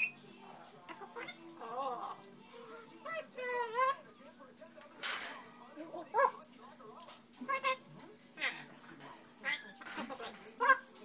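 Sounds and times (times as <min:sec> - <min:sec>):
parrot calling: 0:00.0 - 0:00.2, 0:00.9 - 0:04.1, 0:05.9 - 0:06.4, 0:07.4 - 0:11.0.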